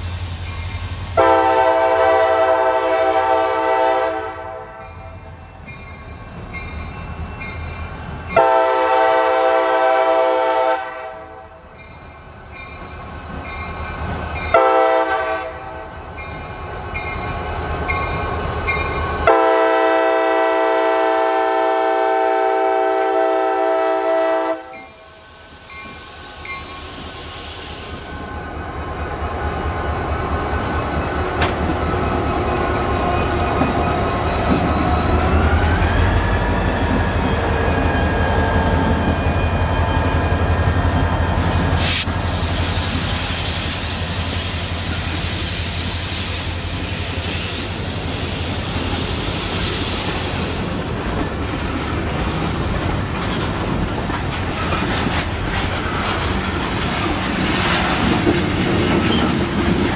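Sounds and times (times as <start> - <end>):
locomotive air horn blasts: 1.2 - 4.8, 8.4 - 11.4, 14.5 - 15.8, 19.2 - 25.1
air hiss: 24.6 - 28.5, 41.8 - 50.8.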